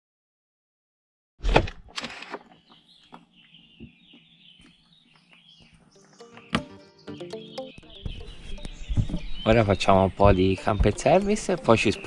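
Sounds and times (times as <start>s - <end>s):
songbirds chirping: 2.2s - 12.0s.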